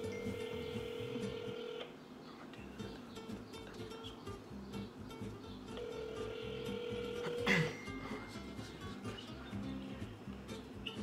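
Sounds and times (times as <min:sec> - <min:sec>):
telephone ringback tone: 0:00.0 - 0:01.9, 0:05.8 - 0:08.4.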